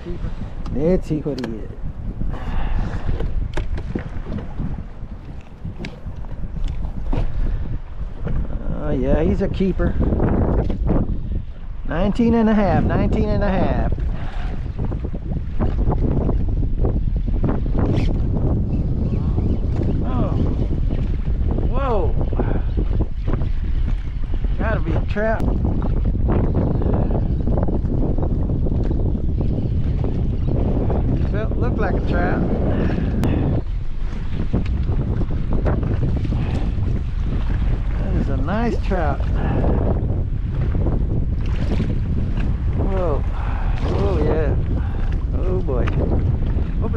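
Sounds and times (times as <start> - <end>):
waves slapping kayak hull: 0.0 - 46.9
wind buffeting microphone: 0.0 - 46.9.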